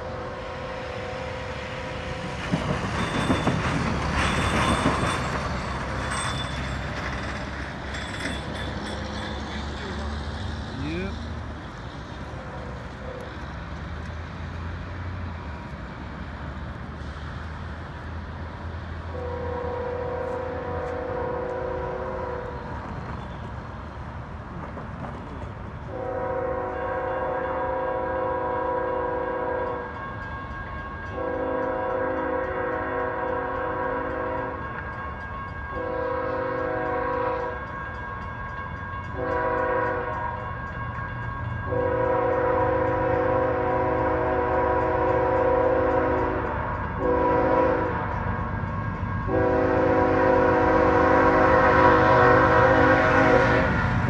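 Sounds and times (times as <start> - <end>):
locomotive air horn blasts: 0.0 - 2.1, 19.1 - 22.7, 25.9 - 30.1, 31.1 - 34.7, 35.7 - 37.6, 39.2 - 40.5, 41.7 - 48.1, 49.2 - 53.9.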